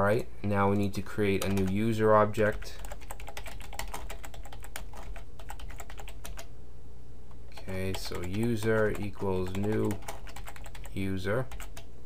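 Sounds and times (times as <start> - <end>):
typing on computer keyboard: 1.4 - 1.8, 2.4 - 6.5, 7.5 - 11.9.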